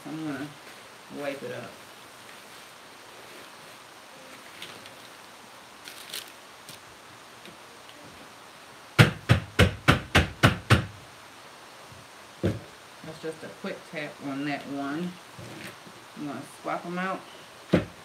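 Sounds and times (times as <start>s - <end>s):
paper towel rustling: 0.3s - 6.8s.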